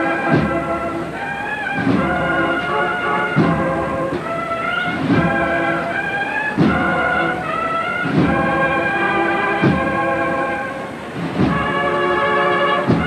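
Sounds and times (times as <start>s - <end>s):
drum strokes: 0.0s - 13.0s
held brass chords: 0.0s - 13.0s.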